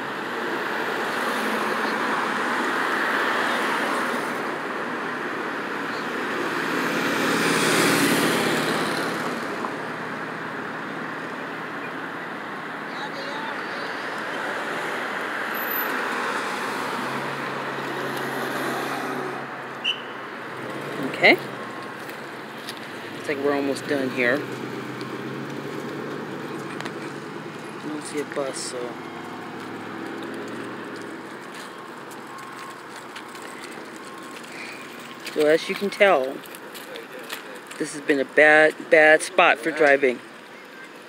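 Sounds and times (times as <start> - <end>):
cars passing: 0.0 - 41.0
road traffic hum: 0.0 - 41.0.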